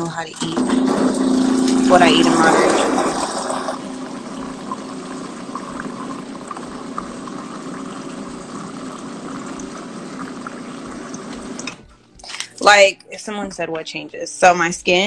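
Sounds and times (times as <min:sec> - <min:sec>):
rushing watery noise: 0:00.8 - 0:11.7.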